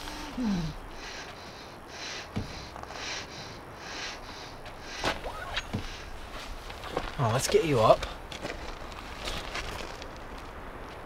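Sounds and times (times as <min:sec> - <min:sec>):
distant car engine and tyres rumble: 0:00.0 - 0:11.0
light crackles: 0:04.2 - 0:11.0.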